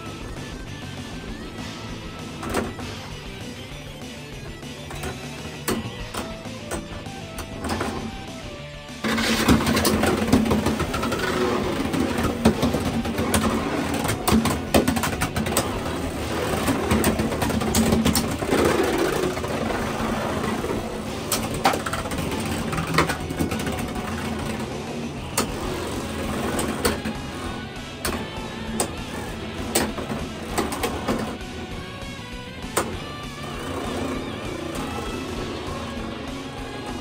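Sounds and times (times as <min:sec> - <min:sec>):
spinning tops whirring: 0:00.0 - 0:37.0.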